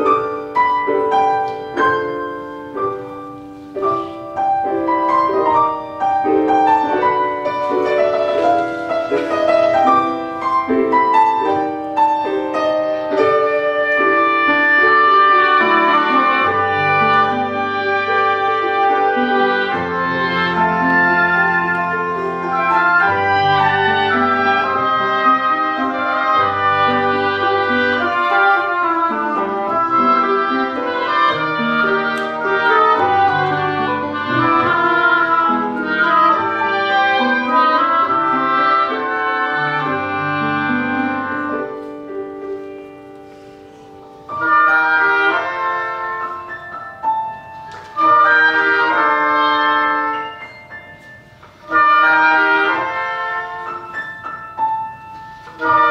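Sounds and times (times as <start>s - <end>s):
piano: 0.0s - 55.9s
oboes and english horn: 13.0s - 41.8s, 44.3s - 46.5s, 48.0s - 50.4s, 51.6s - 54.0s, 55.5s - 55.9s.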